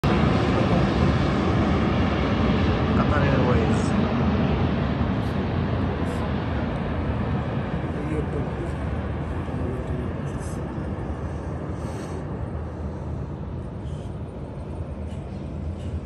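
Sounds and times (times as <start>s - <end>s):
jet airliner engine roar: 0.0s - 16.0s.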